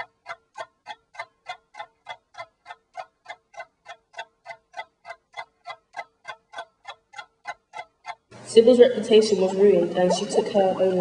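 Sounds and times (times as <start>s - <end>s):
clock ticking: 0.0s - 8.3s.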